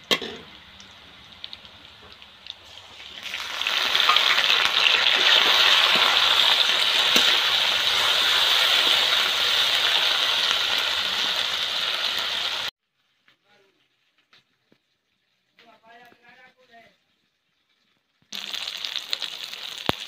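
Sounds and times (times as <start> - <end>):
onions sizzling in hot oil: 0.0 - 20.0.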